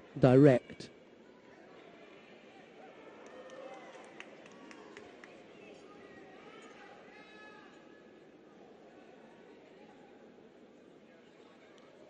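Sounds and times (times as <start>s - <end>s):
faint arena ambience: 0.0s - 12.0s.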